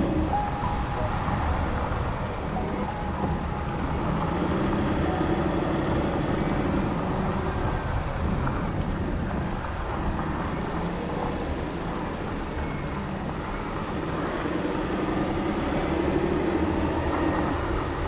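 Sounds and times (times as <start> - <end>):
car engine rumble: 0.0 - 18.0
tyres on dirt road: 0.0 - 18.0.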